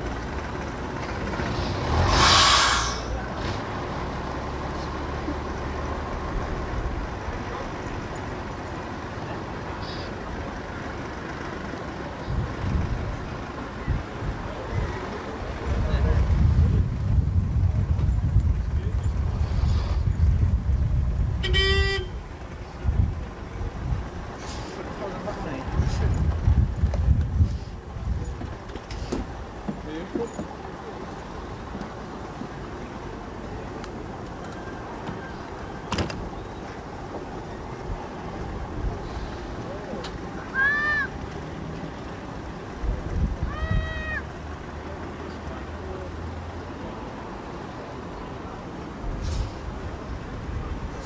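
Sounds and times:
low irregular rumble: 0.0 - 46.1
drawn-out high call: 1.4 - 3.3, 21.4 - 22.4, 40.3 - 41.2, 43.4 - 44.4
steady low rumble: 15.4 - 21.4
vehicle horn toot: 21.4 - 22.2.

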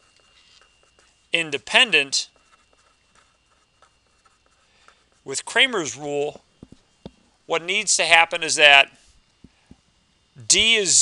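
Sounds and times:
marker scratching on paper: 0.0 - 5.3.

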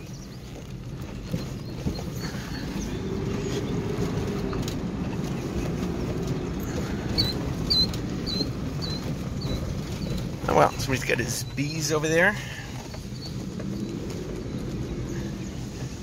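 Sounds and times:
engine: 0.0 - 16.0
tyres rumbling on gravel: 0.0 - 16.0.

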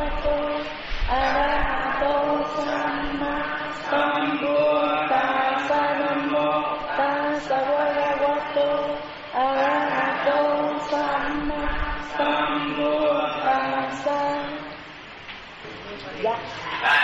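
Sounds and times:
voices chanting melodic phrases: 0.0 - 14.9.

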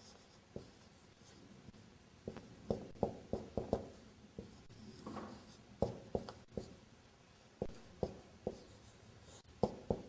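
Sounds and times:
marker pen writing on whiteboard: 0.0 - 1.4, 2.2 - 6.8, 7.6 - 10.0.

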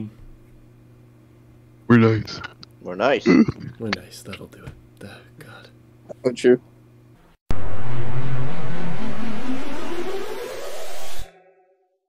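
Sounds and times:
loud rushing noise with rising tone: 7.5 - 11.3.

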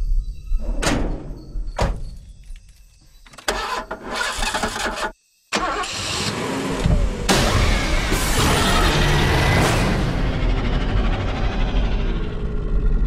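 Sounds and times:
truck engine cranking and starting: 3.3 - 12.7.

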